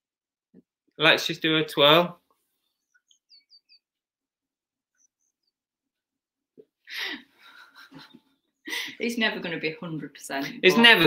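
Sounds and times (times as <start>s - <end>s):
faint high chirps: 2.6s - 4.0s
person's voice: 10.4s - 11.0s.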